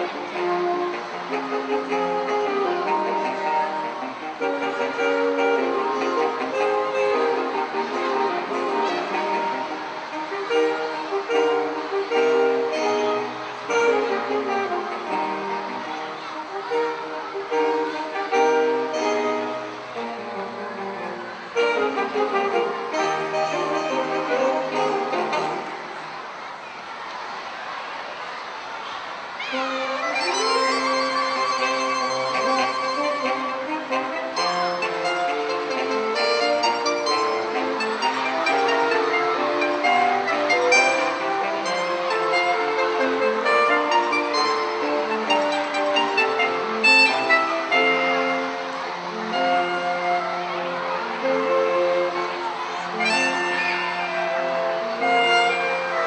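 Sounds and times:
saxophone quartet playing: 0.0s - 26.1s, 29.5s - 56.0s.

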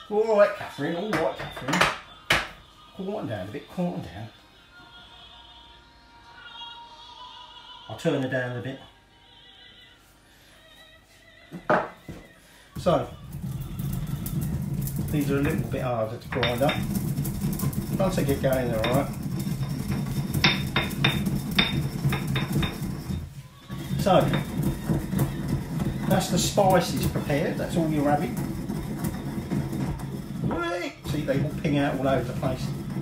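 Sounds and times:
stone pestle grinding spices: 12.8s - 33.0s.

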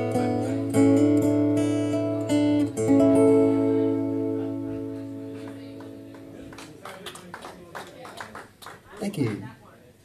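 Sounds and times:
acoustic guitar chord ringing: 0.0s - 6.6s
audience clapping: 5.3s - 9.5s.

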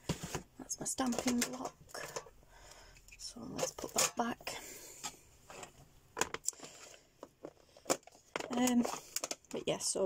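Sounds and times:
plastic tubs knocking and clicking: 0.0s - 2.4s, 5.0s - 10.0s.

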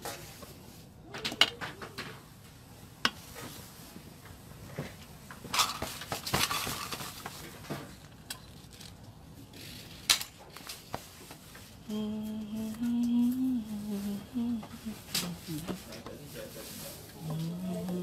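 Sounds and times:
person humming: 11.8s - 15.9s, 17.2s - 18.0s.

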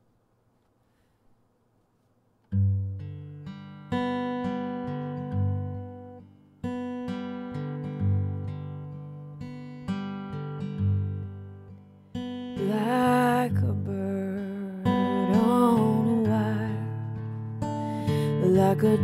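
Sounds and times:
acoustic guitar chords ringing: 2.5s - 19.0s.

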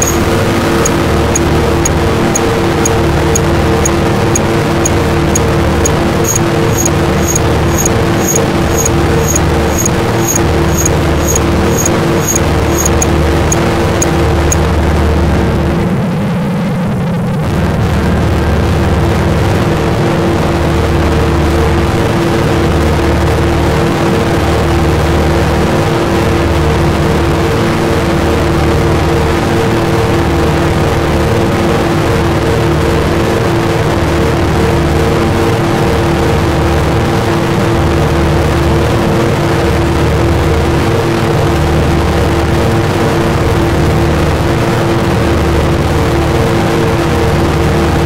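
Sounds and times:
high clicks ticking: 0.0s - 14.1s.

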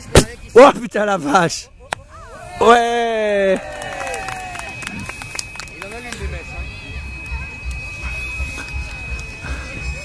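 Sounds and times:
voices of onlookers: 0.0s - 10.0s
firework crackling: 3.7s - 10.0s.

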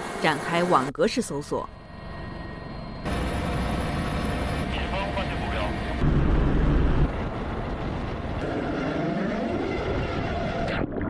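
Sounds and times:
helicopter engine and rotor noise: 0.0s - 10.6s.

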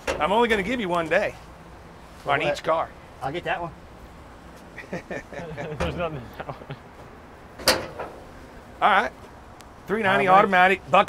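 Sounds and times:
car hood latch clunk: 7.6s - 8.2s.

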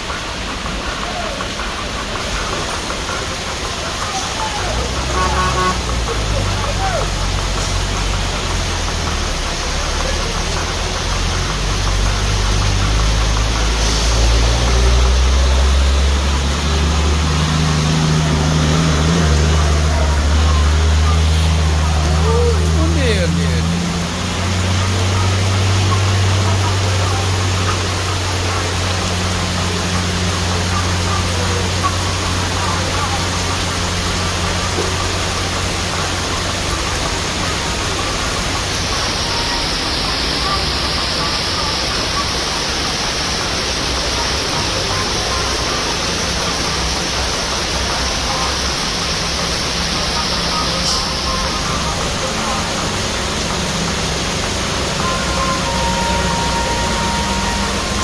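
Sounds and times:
heavy rain hissing: 0.0s - 58.0s
truck engines climbing: 0.0s - 58.0s.

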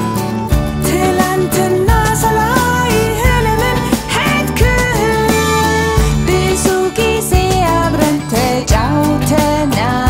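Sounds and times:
sustained bass: 0.0s - 10.0s
sliding melody: 0.2s - 9.4s
low drum thumps: 1.9s - 8.9s.

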